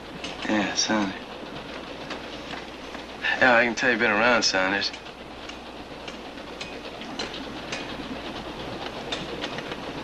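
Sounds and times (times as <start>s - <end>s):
freight car rumbling: 0.0s - 10.0s.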